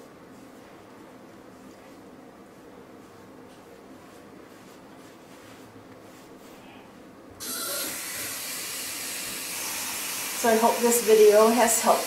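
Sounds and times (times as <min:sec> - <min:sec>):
tap water running into sink: 0:07.4 - 0:11.1.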